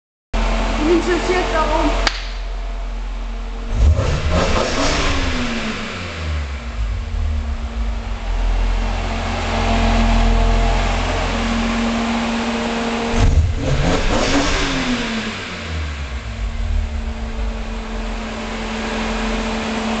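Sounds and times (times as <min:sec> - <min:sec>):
car engine idling and revving: 0:00.4 - 0:20.0.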